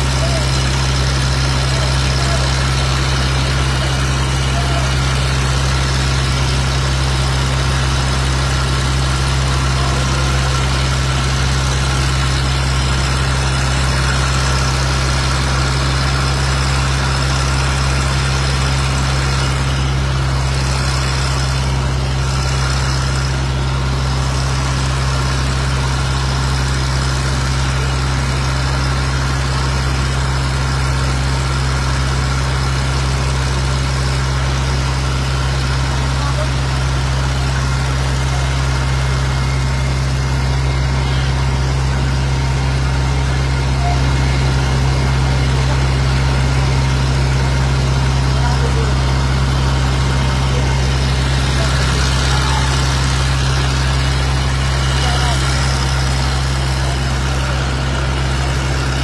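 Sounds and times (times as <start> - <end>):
fire truck engine droning: 0.0 - 59.0.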